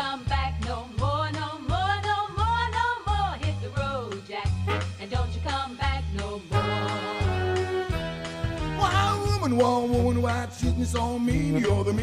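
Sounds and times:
drums: 0.0s - 12.0s
bass line: 0.3s - 5.5s, 6.6s - 12.0s
saxophone: 4.6s - 5.2s, 6.5s - 9.5s, 11.4s - 12.0s
person singing: 8.8s - 12.0s.

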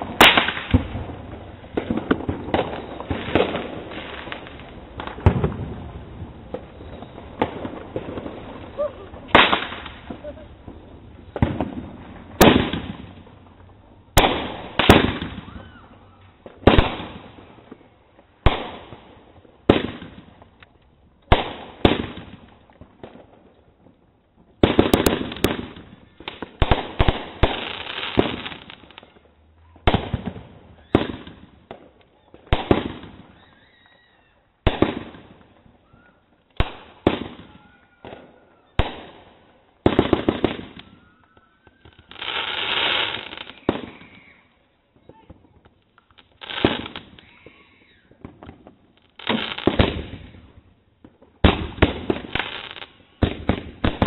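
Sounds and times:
fireworks rushing burst: 0.0s - 17.6s
fireworks bursting with loud bangs: 0.0s - 54.0s.

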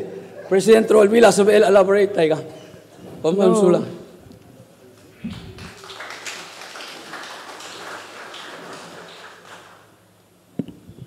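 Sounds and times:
audience applause: 5.1s - 10.0s.

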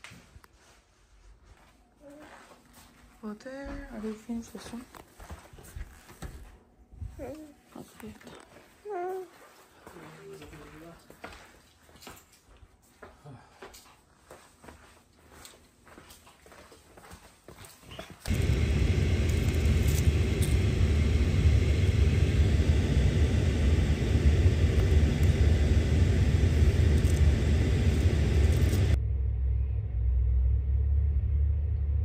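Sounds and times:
low rumble inside a car: 18.3s - 32.0s.

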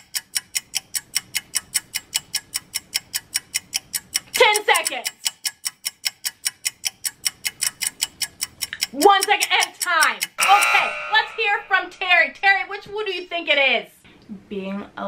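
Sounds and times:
countdown timer ticking: 0.0s - 13.0s.

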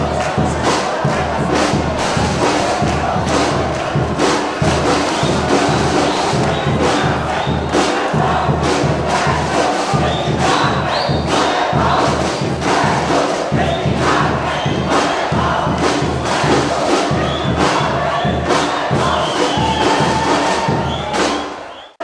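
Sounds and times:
bass drums and snares beat: 0.0s - 10.9s
crowd chanting: 0.0s - 22.0s.

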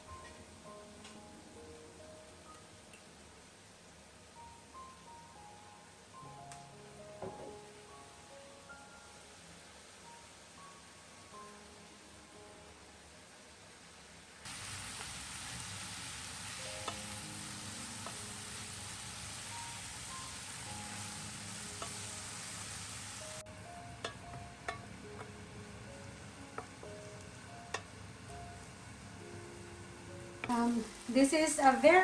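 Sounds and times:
food sizzling in a pan: 13.3s - 32.0s
spoon clicking against pan: 24.0s - 25.3s.

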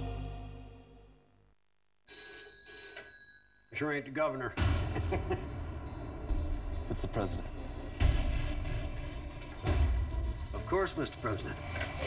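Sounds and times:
desk telephone ringing: 2.1s - 3.8s.

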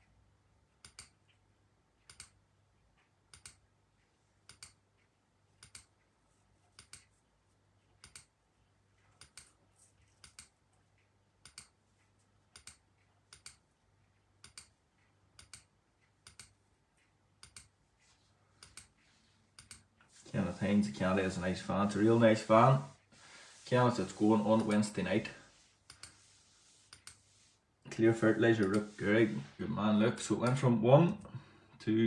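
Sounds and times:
computer mouse clicks: 0.8s - 1.4s, 2.0s - 2.4s, 3.3s - 3.7s, 4.4s - 6.1s, 6.7s - 7.2s, 8.0s - 8.4s, 9.0s - 11.8s, 12.5s - 13.7s, 14.4s - 14.8s, 15.4s - 17.8s, 18.6s - 19.9s, 25.9s - 26.2s, 26.9s - 27.2s, 28.6s - 29.0s.

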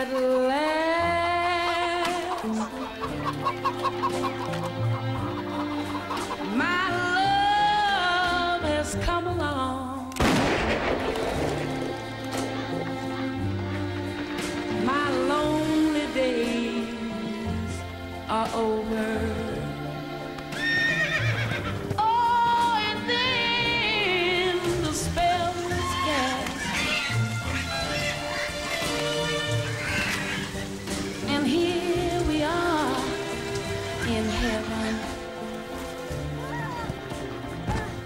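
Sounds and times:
hens clucking: 0.0s - 7.8s, 23.4s - 38.0s
backing music: 0.0s - 38.0s
horse whinnying: 20.5s - 22.0s, 25.6s - 31.9s.

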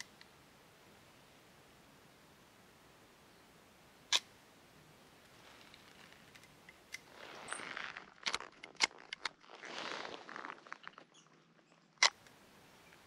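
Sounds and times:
cloth rustling against microphone: 5.2s - 11.5s.

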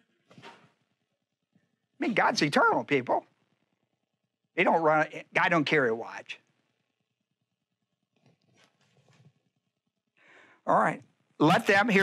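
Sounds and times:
faint taps and rustles of book: 8.2s - 9.5s.

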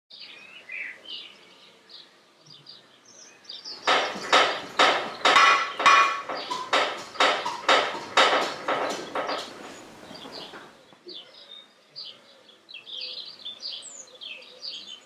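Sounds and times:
sharp metallic strikes: 3.8s - 9.8s.

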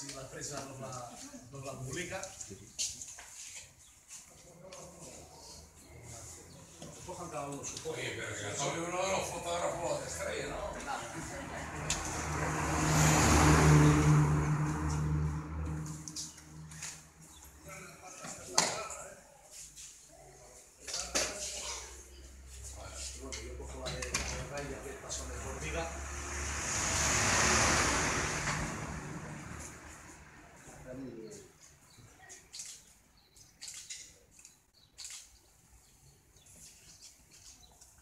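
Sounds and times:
vehicle passing by: 8.2s - 18.0s, 21.9s - 31.6s.

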